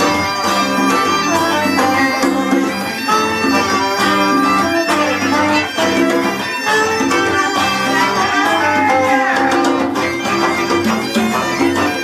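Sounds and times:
electric bass guitar: 0:00.0 - 0:12.0
hand percussion: 0:00.0 - 0:12.0
violin: 0:00.0 - 0:12.0.

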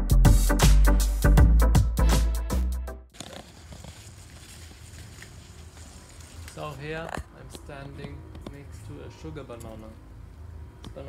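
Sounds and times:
faint crackles: 0:03.1 - 0:08.6.

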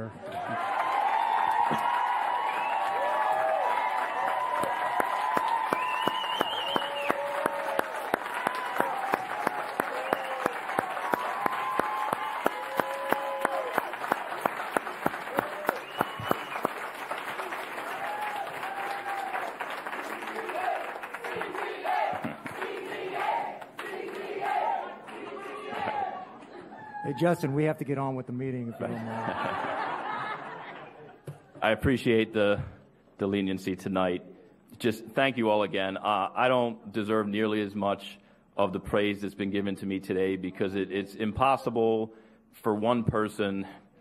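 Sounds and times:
whoops and shouts: 0:00.2 - 0:13.9, 0:15.3 - 0:16.5, 0:17.9 - 0:19.5, 0:26.7 - 0:27.5
crowd applauding: 0:00.3 - 0:26.4
rhythmic clapping: 0:04.6 - 0:26.0.

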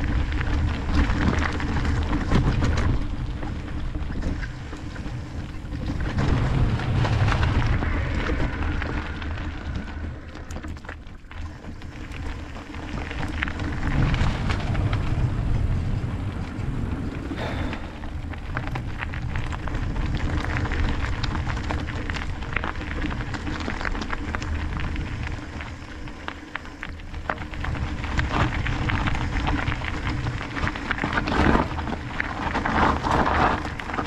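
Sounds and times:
bike tyres rolling over gravel: 0:00.0 - 0:34.0
stones and bike rattling: 0:00.0 - 0:34.0
wind buffeting microphone: 0:00.0 - 0:34.0.

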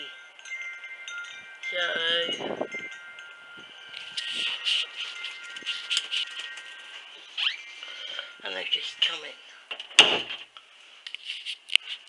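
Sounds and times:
metal wind chime tinkling: 0:00.0 - 0:09.7.

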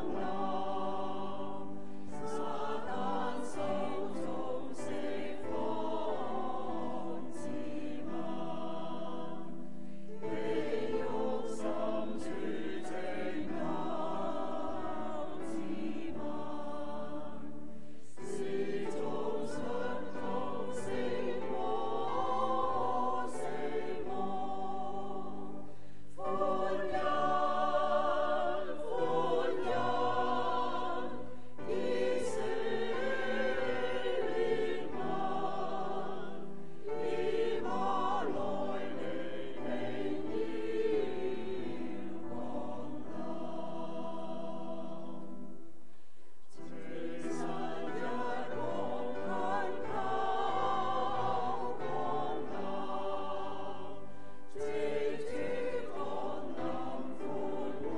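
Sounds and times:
choir singing a hymn: 0:00.0 - 0:45.8, 0:46.4 - 0:57.9.

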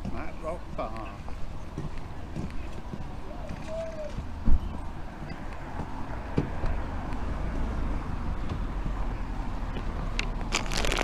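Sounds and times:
footsteps on pavement: 0:00.0 - 0:11.0
low street rumble: 0:00.0 - 0:11.0.

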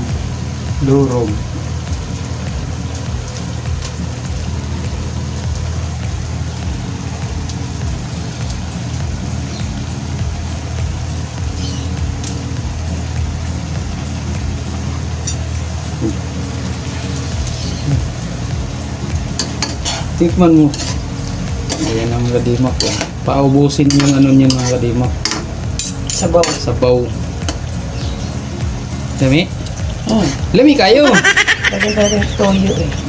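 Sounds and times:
food sizzling in a wok: 0:00.0 - 0:33.0.

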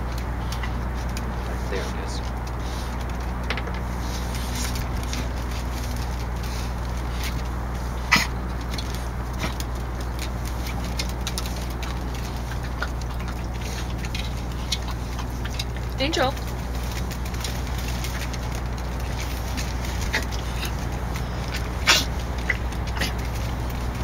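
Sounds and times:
low background hum: 0:00.0 - 0:24.0.

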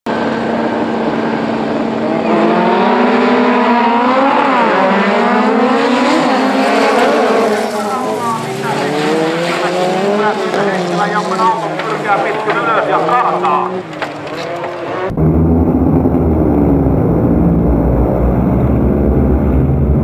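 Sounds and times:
racing car engines revving: 0:00.1 - 0:20.0.

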